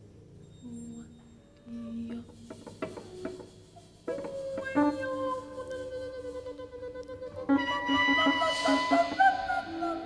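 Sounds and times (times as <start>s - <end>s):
jazz instrumental music: 2.0s - 10.0s.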